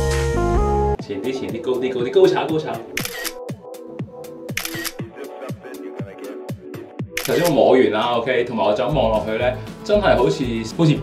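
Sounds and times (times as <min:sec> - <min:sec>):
music with kick drum beat: 0:00.0 - 0:07.2
camera shutter sound effect: 0:03.0 - 0:03.4, 0:04.5 - 0:05.0, 0:07.2 - 0:07.5.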